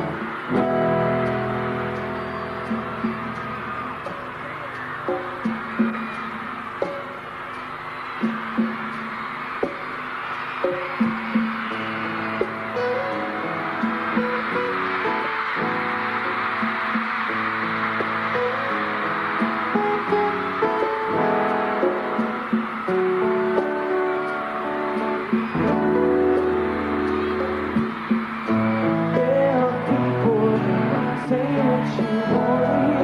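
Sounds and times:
audience noise: 0.0s - 33.0s.

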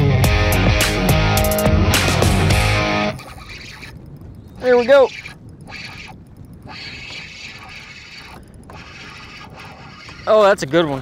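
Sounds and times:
fishing reel whirring: 1.4s - 11.0s.

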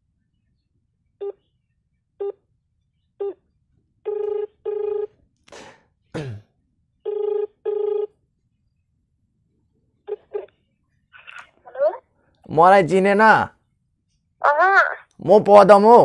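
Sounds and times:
phone ringback tone: 4.1s - 5.1s, 7.1s - 8.1s.

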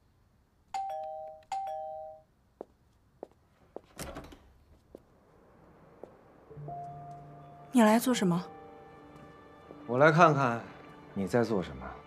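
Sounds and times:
doorbell ding-dong chime: 0.8s - 2.2s.

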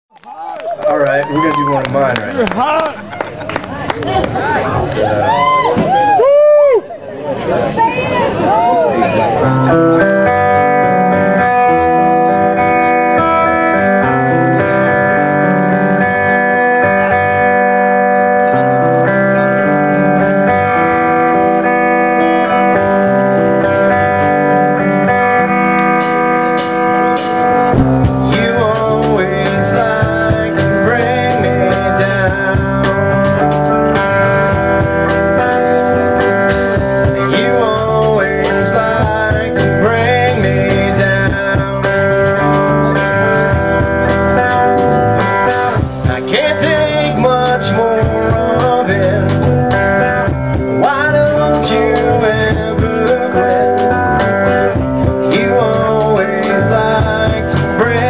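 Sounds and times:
drums: 3.9s - 6.9s, 9.4s - 58.0s
electric guitar ringing notes: 9.2s - 58.0s.

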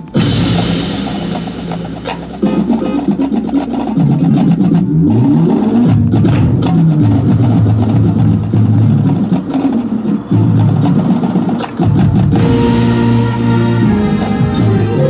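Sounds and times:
mallet keyboard and drum hits: 0.0s - 4.9s, 11.8s - 15.0s
low brass chords: 12.3s - 15.0s.

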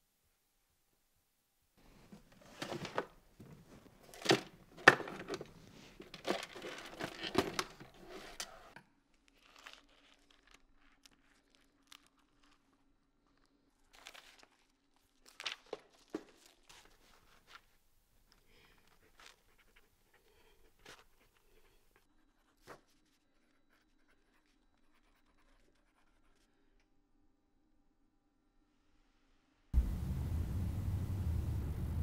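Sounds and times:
paper packaging rustling and tearing: 2.4s - 8.5s, 9.3s - 17.8s.

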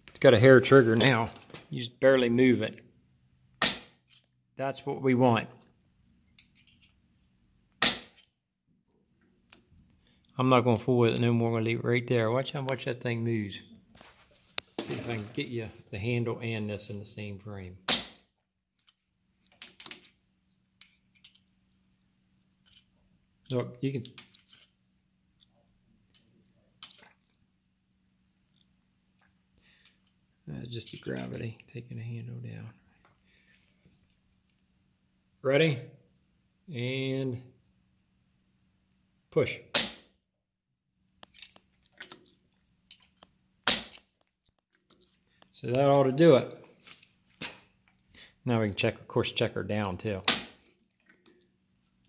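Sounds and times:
faint steady hum: 9.0s - 18.1s, 18.8s - 40.0s, 41.0s - 52.0s.

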